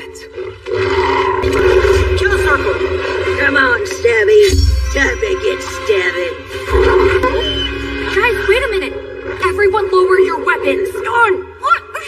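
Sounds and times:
film score and effects: 0:00.0 - 0:12.0.

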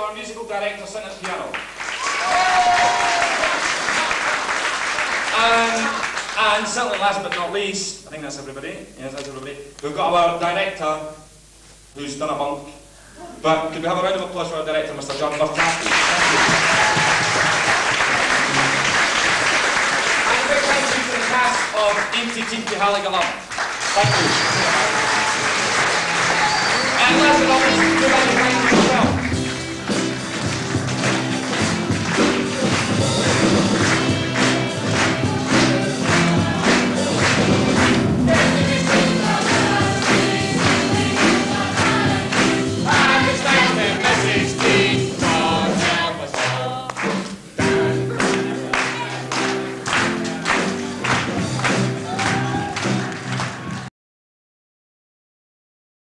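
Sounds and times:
live band playing: 0:16.3 - 0:21.0, 0:23.7 - 0:53.9
group singing in chorus: 0:31.4 - 0:48.6.

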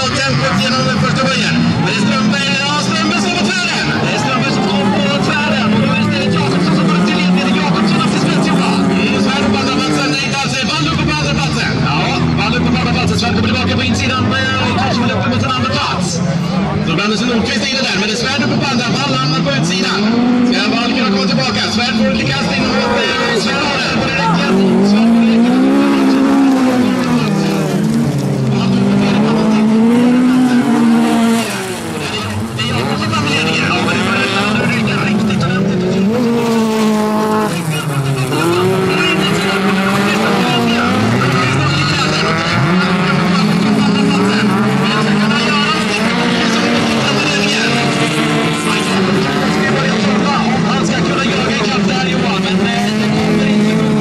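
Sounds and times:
race car engines revving: 0:00.0 - 0:54.0.

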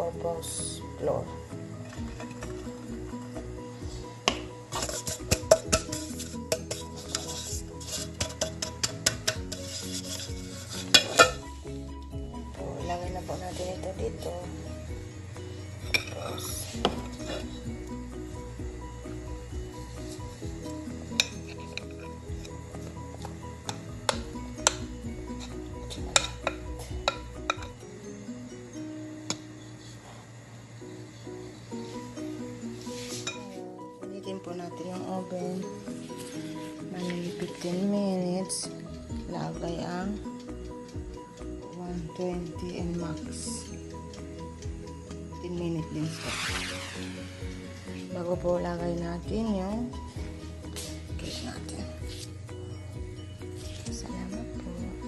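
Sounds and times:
background music: 0:00.0 - 0:55.0
metal spoon tapping a metal pan: 0:04.2 - 0:11.5, 0:21.1 - 0:22.5, 0:23.6 - 0:27.8.

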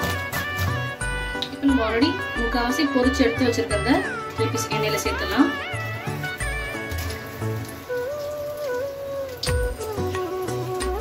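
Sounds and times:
batter sizzling in hot oil: 0:00.0 - 0:11.0
slow background music: 0:00.0 - 0:11.0.

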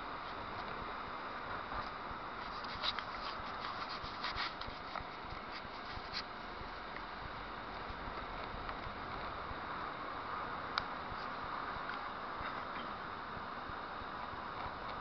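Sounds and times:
car road and engine noise: 0:00.0 - 0:15.0.

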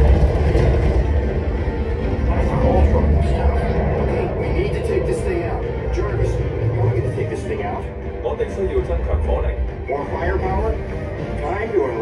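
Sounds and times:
battle music: 0:00.0 - 0:12.0
deep rumble: 0:00.0 - 0:12.0
indistinct voices: 0:00.0 - 0:12.0.

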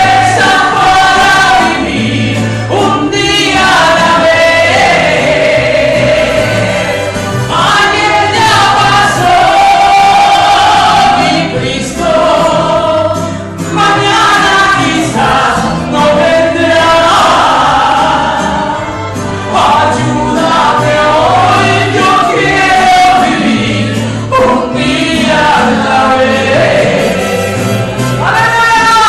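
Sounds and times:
steady bass line: 0:00.0 - 0:28.6
live band playing: 0:00.0 - 0:29.0
woman singing into a microphone: 0:02.7 - 0:05.2, 0:07.5 - 0:18.2, 0:28.2 - 0:29.0.

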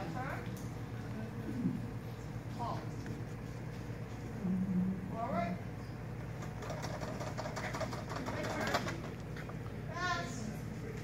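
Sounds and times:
steady low hum: 0:00.0 - 0:11.0
indistinct talking: 0:06.4 - 0:11.0.

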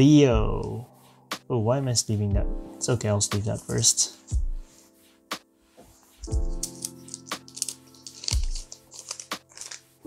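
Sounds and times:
background music with beat: 0:00.0 - 0:10.0
cards and plastic sleeves crinkling: 0:06.1 - 0:10.0.

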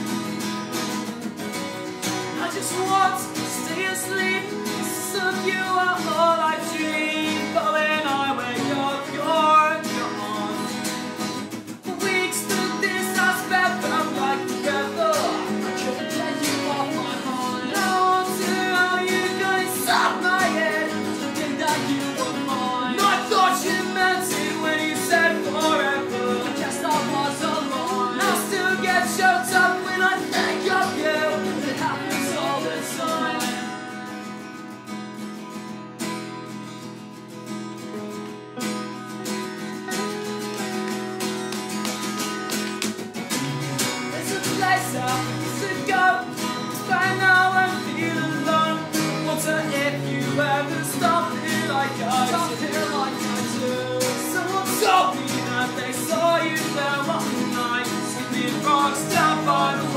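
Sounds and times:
acoustic guitars playing: 0:00.0 - 0:59.9
person singing: 0:02.3 - 0:11.2, 0:11.8 - 0:34.3, 0:44.0 - 0:59.9.

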